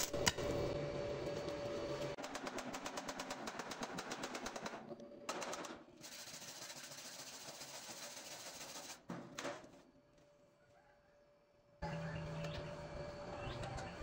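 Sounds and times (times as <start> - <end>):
wire brush scrubbing metal: 6.0 - 9.0.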